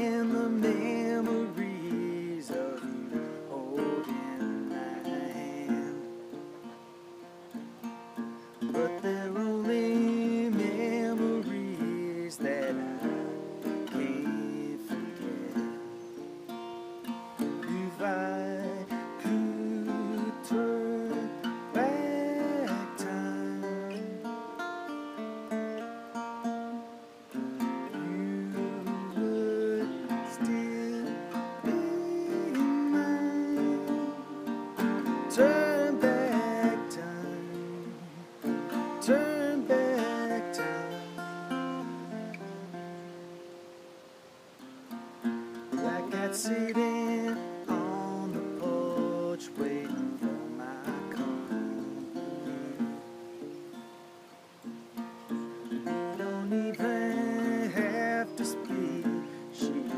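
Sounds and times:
man singing: 0:00.0 - 0:06.7, 0:08.6 - 0:16.1, 0:17.2 - 0:43.0, 0:45.6 - 0:53.2, 0:55.6 - 0:59.9
acoustic guitar strumming: 0:00.0 - 0:59.9.

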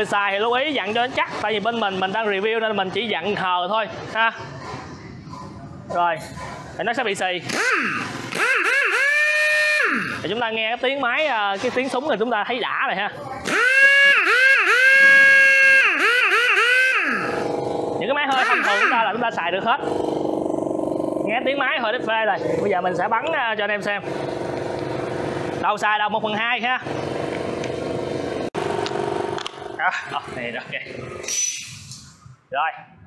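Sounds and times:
air impact wrench whine: 0:07.4 - 0:10.4, 0:13.4 - 0:25.8, 0:26.8 - 0:32.2.

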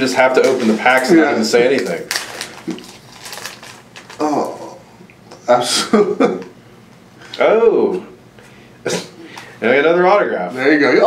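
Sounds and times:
foil wrapper crinkling: 0:00.3 - 0:04.6.

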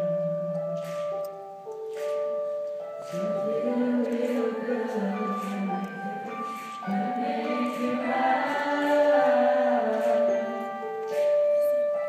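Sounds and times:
mixed choir singing: 0:03.2 - 0:10.8.

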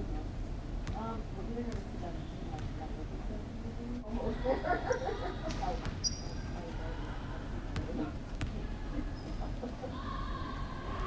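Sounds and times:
sneaker squeak: 0:05.8 - 0:06.6, 0:09.1 - 0:09.4.

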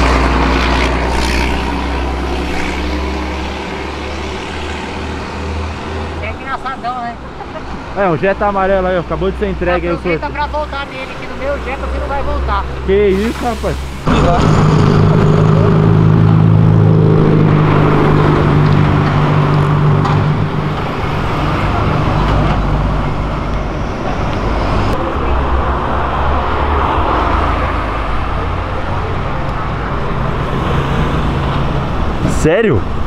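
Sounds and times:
cars passing on road: 0:00.0 - 0:33.0
engine hum: 0:00.0 - 0:33.0.

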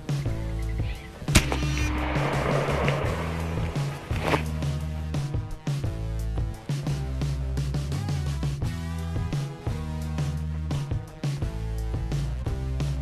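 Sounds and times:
music with steady beat: 0:00.0 - 0:13.0
air rifle shot: 0:01.3 - 0:05.2
short rush of noise: 0:01.4 - 0:05.3.

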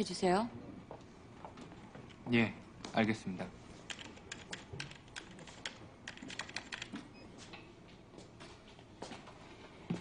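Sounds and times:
computer keyboard typing: 0:03.8 - 0:07.0.

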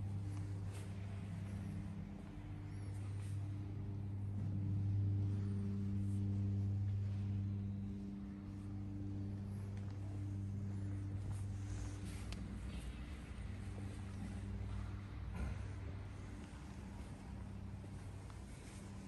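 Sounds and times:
electric machinery humming: 0:00.0 - 0:19.0.

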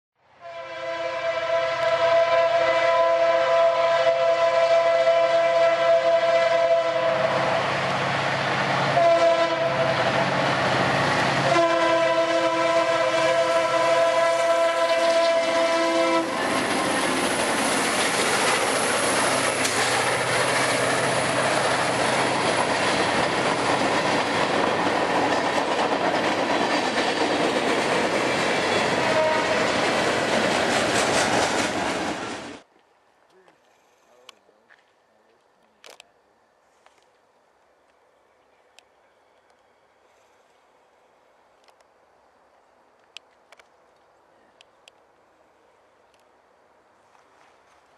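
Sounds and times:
locomotive air horn blasts: 0:00.4 - 0:07.7, 0:08.8 - 0:10.4, 0:11.2 - 0:16.5, 0:28.8 - 0:29.8
locomotive engine noise: 0:07.0 - 0:32.7
train wheels clacking over rail joints: 0:16.4 - 0:32.6.

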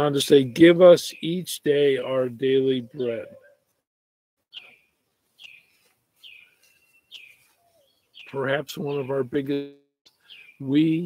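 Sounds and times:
preacher speaking: 0:00.0 - 0:03.4, 0:08.3 - 0:09.8, 0:10.6 - 0:11.0.

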